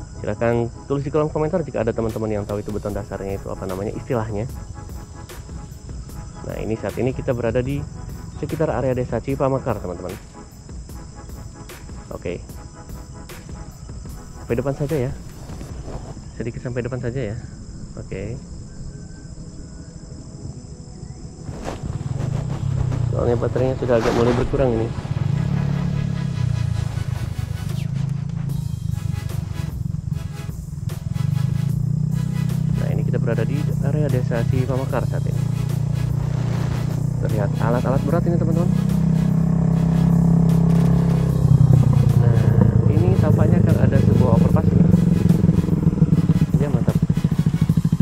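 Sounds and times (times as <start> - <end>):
insects chirring: 0.0 - 48.0
engine humming: 1.3 - 48.0
low rumble: 21.4 - 31.2.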